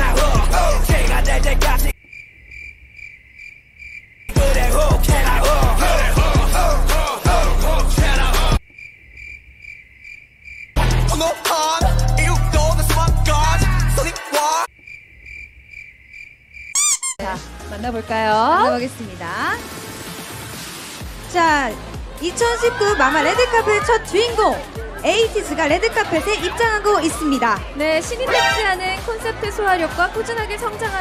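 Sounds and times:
music with a beat: 0.0s - 1.9s, 4.3s - 8.6s, 10.8s - 14.7s
cricket chirping sound effect: 1.9s - 4.4s, 8.6s - 10.8s, 14.6s - 17.2s.

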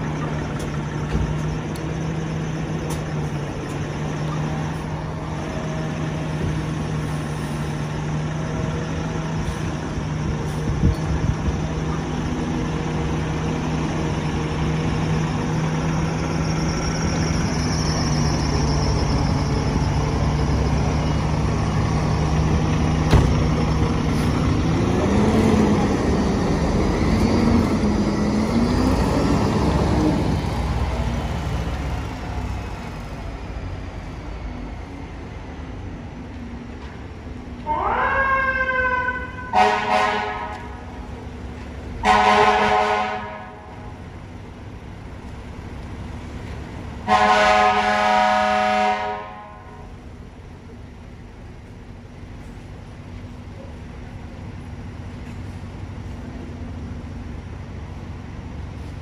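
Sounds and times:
truck engine idling and revving: 0.0s - 59.0s.

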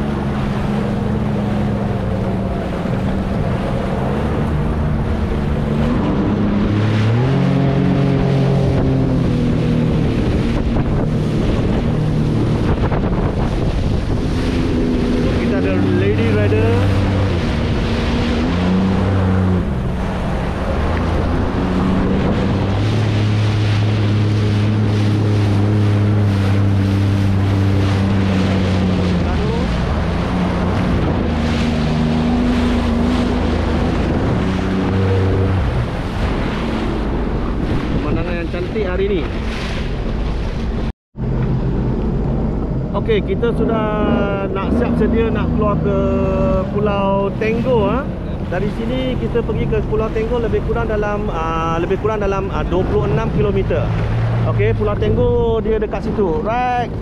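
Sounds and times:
jet ski engine: 0.0s - 57.0s
wind buffeting microphone: 0.0s - 57.0s.

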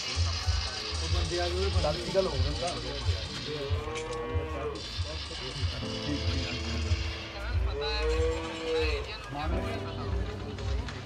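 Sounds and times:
low repeating beat: 0.0s - 11.0s.

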